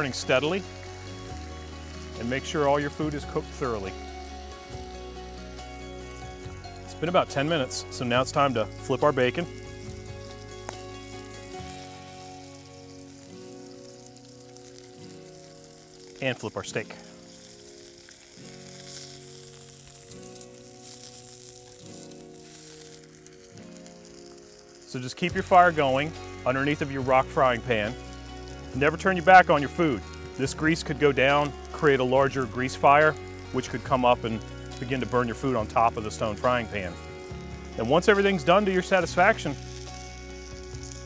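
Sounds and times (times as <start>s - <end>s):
background music: 0.0s - 41.0s
meat sizzling on a griddle: 0.0s - 41.0s.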